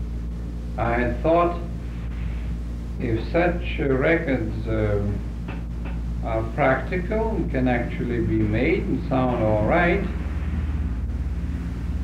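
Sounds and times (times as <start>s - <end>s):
low hum: 0.0s - 12.0s
tape hiss: 0.0s - 12.0s.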